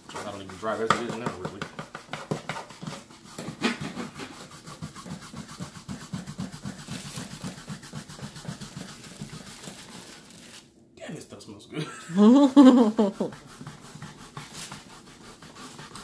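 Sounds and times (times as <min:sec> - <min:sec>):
cleaner tool rubbing upholstery: 0:00.0 - 0:10.1, 0:12.6 - 0:16.0.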